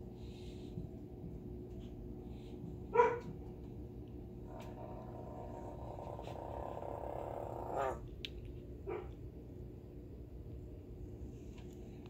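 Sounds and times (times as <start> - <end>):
bullfrog buzzing call: 4.6 - 8.0
bullfrog croaking: 4.7 - 8.0.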